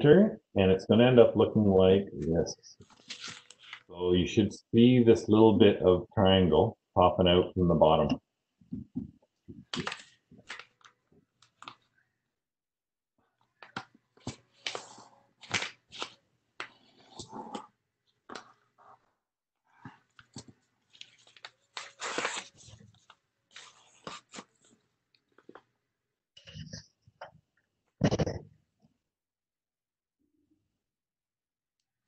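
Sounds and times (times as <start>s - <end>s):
paper crinkling and rustling: 2.8s - 3.9s, 9.7s - 11.9s, 20.1s - 24.8s.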